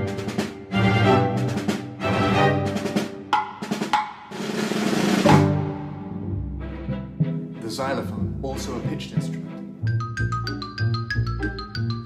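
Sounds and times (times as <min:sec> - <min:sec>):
snare drum roll: 0:00.0 - 0:06.0
sustained string chords: 0:05.2 - 0:12.0.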